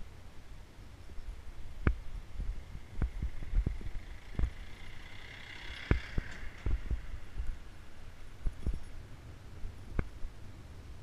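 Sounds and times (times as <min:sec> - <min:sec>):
low rumble: 0:00.9 - 0:10.4.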